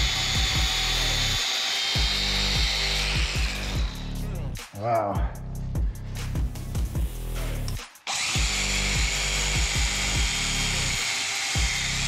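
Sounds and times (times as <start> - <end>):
belt sander on metal tube: 0.0 - 4.3, 8.1 - 12.0
background music: 0.0 - 12.0.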